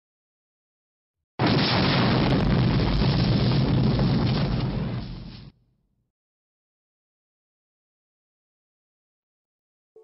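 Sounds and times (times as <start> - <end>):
explosion-like rumbling rush: 1.4 - 5.6.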